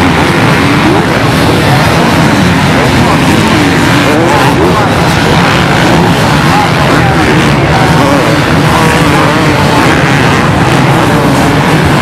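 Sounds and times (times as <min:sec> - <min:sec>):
motorcycle engines revving: 0:00.0 - 0:12.0.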